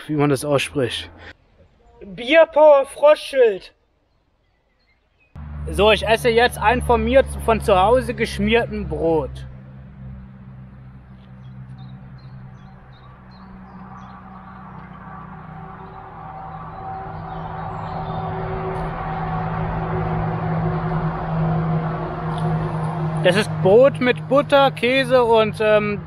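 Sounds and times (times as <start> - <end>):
vehicle engine hum: 5.4 - 26.0.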